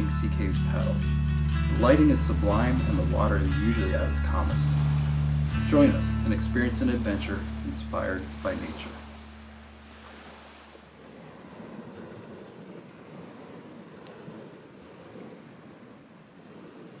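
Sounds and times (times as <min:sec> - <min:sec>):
music: 0:00.0 - 0:09.3
small waves washing on shore: 0:01.7 - 0:17.0.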